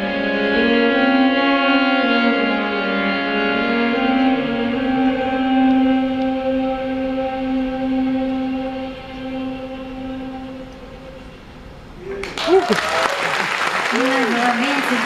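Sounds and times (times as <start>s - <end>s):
violins sustaining bowed notes: 0.0s - 12.0s.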